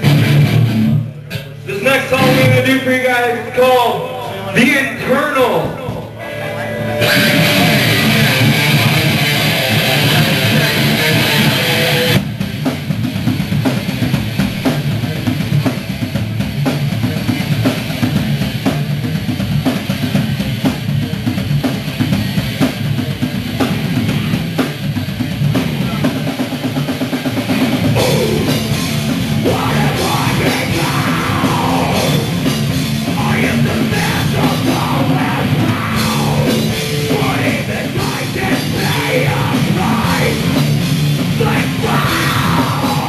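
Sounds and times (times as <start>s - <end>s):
driving rock drum beat: 0.0s - 3.8s, 4.5s - 43.0s
bass guitar: 0.0s - 43.0s
chugging electric guitars: 0.0s - 43.0s
distorted electric guitar chord: 6.1s - 12.2s, 28.0s - 43.0s.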